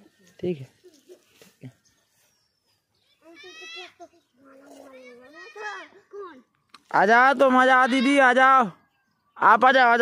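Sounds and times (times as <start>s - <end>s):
child calling: 3.1s - 6.5s.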